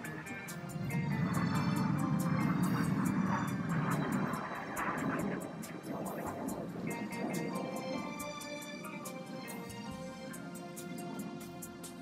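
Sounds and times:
jets flying past: 0:00.0 - 0:12.0
music with steady beat: 0:00.0 - 0:12.0.

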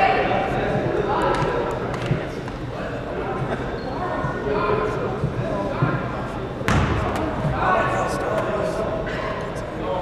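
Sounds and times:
spectator chatter in gymnasium: 0:00.0 - 0:10.0
basketball bounce: 0:06.7 - 0:07.3.

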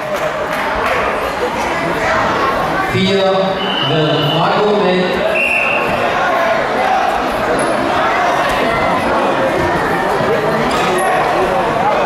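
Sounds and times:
crowd chatter in hall: 0:00.0 - 0:12.0.

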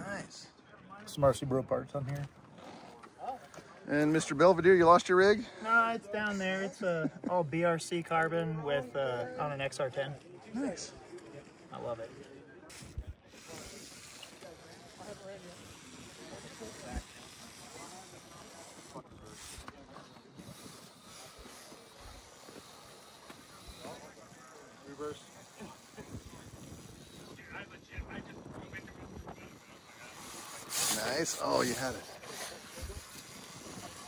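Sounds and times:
distant voices talking: 0:10.0 - 0:34.0.

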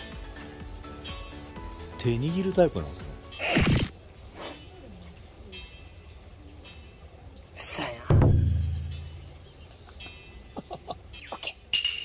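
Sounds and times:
deep struck ring: 0:08.1 - 0:09.3.

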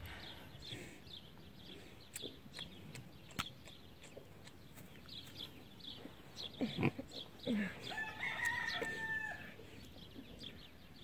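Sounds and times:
small birds chirping: 0:00.0 - 0:11.0
rooster low calls: 0:07.5 - 0:09.6
rooster crowing: 0:07.9 - 0:09.6.

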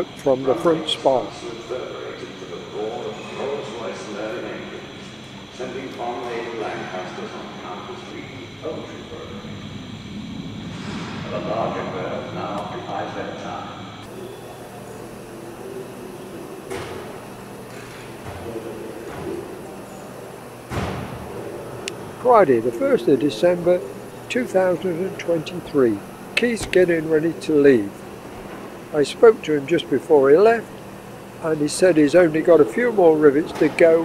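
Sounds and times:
indistinct voices talking: 0:00.0 - 0:34.0
steady background hum: 0:00.0 - 0:34.0.

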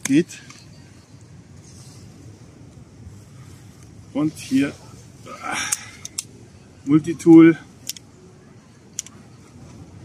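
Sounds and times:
axe multitool clicks: 0:07.8 - 0:08.1, 0:08.9 - 0:09.2.

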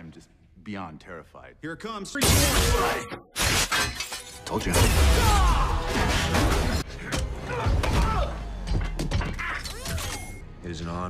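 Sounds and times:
glass shattering and crashing: 0:02.2 - 0:06.8.

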